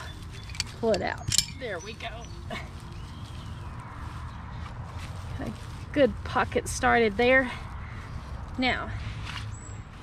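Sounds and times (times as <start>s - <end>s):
dry straw rustling and crackling: 0.0s - 10.0s.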